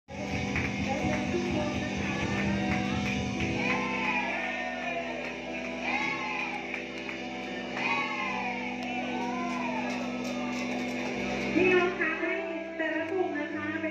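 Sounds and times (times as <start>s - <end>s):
bass beat: 0.1s - 11.9s
backing music over loudspeakers: 0.1s - 13.9s.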